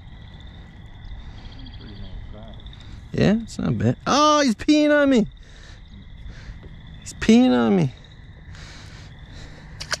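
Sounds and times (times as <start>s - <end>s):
low open-air background: 0.0s - 10.0s.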